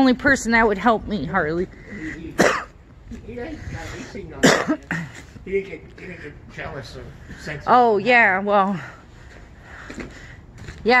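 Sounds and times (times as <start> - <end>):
person coughing: 2.4 - 2.8, 4.4 - 5.2.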